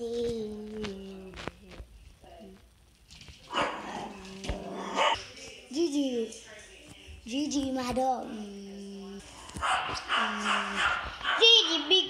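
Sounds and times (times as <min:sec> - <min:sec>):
dog barking: 0:03.5 - 0:03.9, 0:04.9 - 0:05.2, 0:09.6 - 0:11.9.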